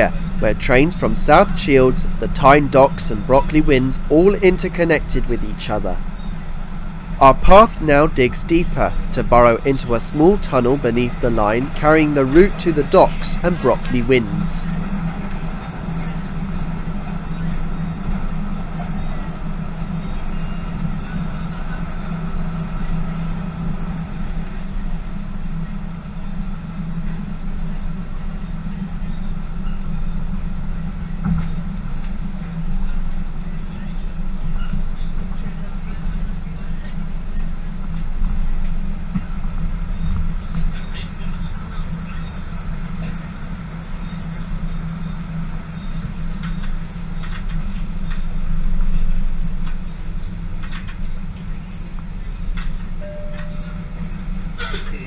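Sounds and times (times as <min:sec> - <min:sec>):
train wheels and motors rumbling: 0:00.0 - 0:55.0.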